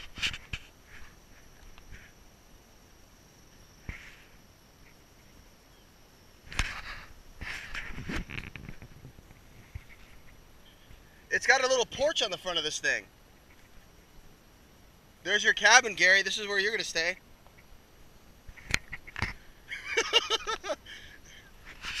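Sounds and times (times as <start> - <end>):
grass and brush rustling: 0.0 - 22.0.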